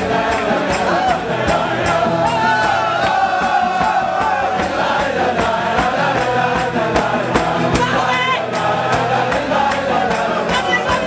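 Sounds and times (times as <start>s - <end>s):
men singing together: 0.0s - 11.0s
singer on a microphone: 0.0s - 11.0s
steady beat: 0.0s - 11.0s
strummed acoustic guitars: 0.0s - 11.0s.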